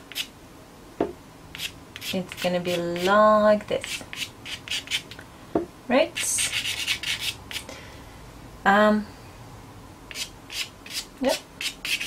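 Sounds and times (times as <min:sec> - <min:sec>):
pastel pencil scratching on paper: 0:06.2 - 0:07.6, 0:10.1 - 0:12.0.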